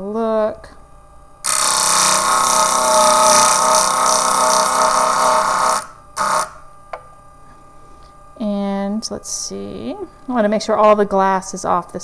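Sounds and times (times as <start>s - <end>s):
glass grinding on diamond disc: 1.5s - 6.6s.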